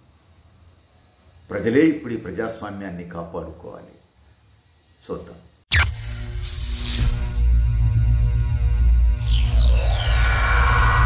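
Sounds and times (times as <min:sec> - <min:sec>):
deep drone: 0:05.7 - 0:11.0
whoosh: 0:09.2 - 0:11.0.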